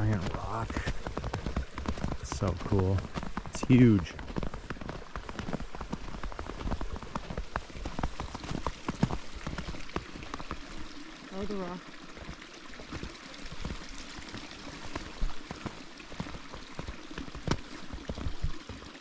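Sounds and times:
footsteps crunching through snow: 0.0s - 10.8s, 12.2s - 18.9s.

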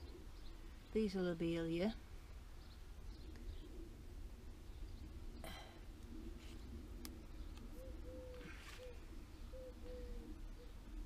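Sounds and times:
dove cooing: 0.0s - 0.7s, 3.2s - 4.2s, 5.0s - 11.0s.

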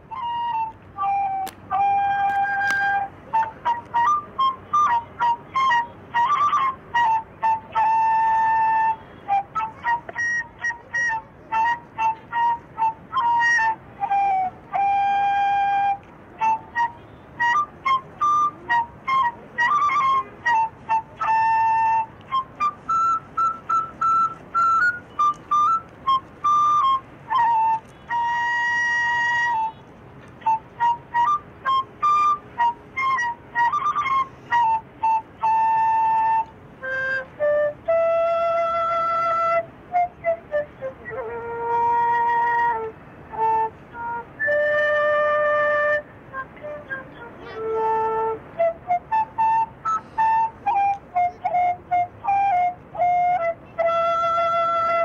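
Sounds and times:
wind instrument melody: 0.0s - 55.0s.

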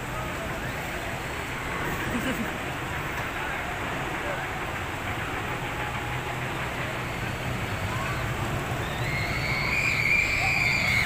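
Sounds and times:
roller coaster rumbling on track: 0.0s - 11.0s
high drawn-out squeal: 7.0s - 11.0s.

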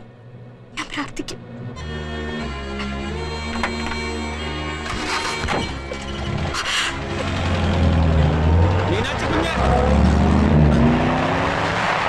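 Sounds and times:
film score with sustained tones: 0.0s - 12.0s.

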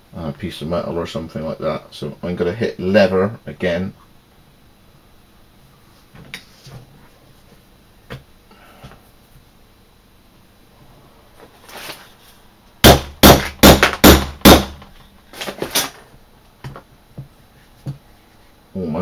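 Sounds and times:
hammer striking leather punch: 12.8s - 14.8s.

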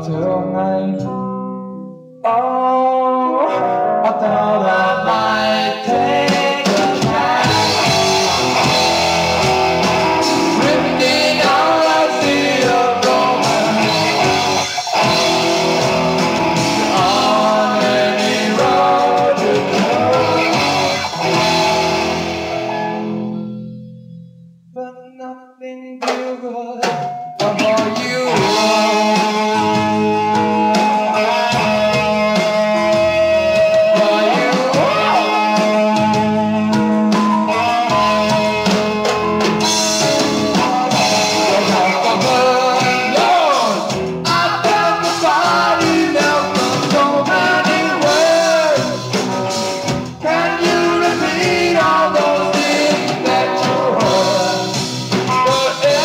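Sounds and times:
rock band playing instrumental: 4.4s - 24.2s, 26.8s - 56.0s
sliding bending guitar notes: 5.1s - 24.5s.

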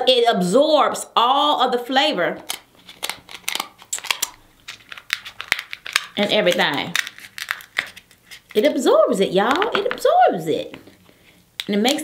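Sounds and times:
shears cracking crab shell: 2.4s - 8.6s.

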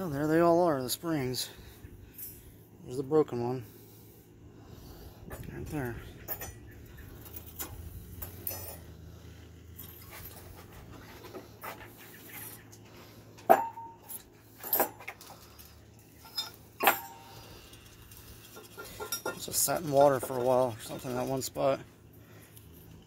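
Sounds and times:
metal parts clinking together: 5.3s - 8.9s, 13.5s - 21.2s.

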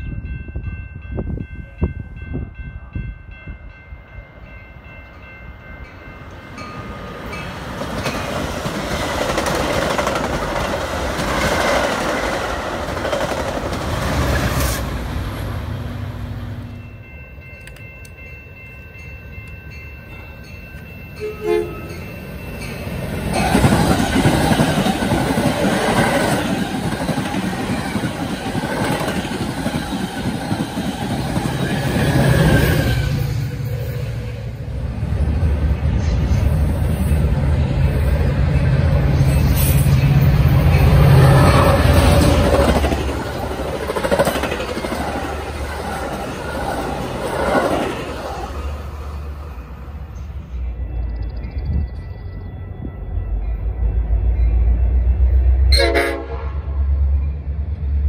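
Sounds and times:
train wheels on rails: 3.3s - 55.7s
train horn: 21.2s - 22.0s, 55.5s - 56.9s.

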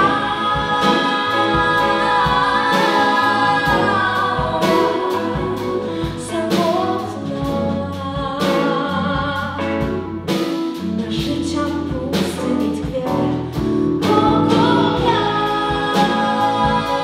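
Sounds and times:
voices singing harmony: 0.0s - 7.1s, 14.0s - 17.0s
pop band playing: 0.0s - 17.0s.

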